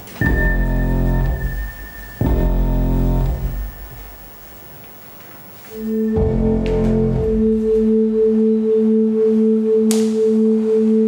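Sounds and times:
pulsing pure tones: 0:00.0 - 0:04.7, 0:05.7 - 0:11.0.

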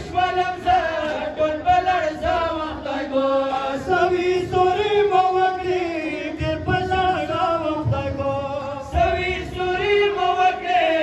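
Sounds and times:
man singing into a microphone: 0:00.0 - 0:11.0
men chanting in unison: 0:00.0 - 0:11.0.

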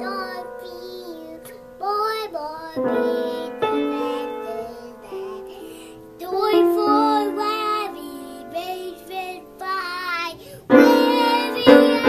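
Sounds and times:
toddler singing: 0:00.0 - 0:12.0
upright piano notes: 0:00.0 - 0:12.0.

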